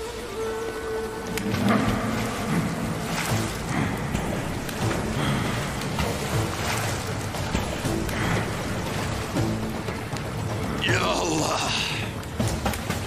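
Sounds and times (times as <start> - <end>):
dramatic background music: 0.0 - 13.0
splashes of running through water: 0.0 - 13.0
waterfall and stream rushing: 0.0 - 13.0.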